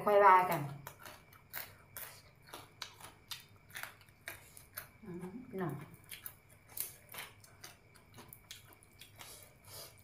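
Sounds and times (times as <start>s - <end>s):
person chewing crunchy food: 0.4s - 10.0s.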